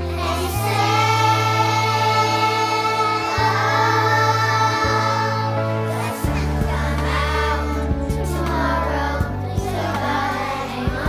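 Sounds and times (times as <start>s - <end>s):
children's choir singing: 0.0s - 11.0s
instrumental backing track with bass: 0.0s - 11.0s.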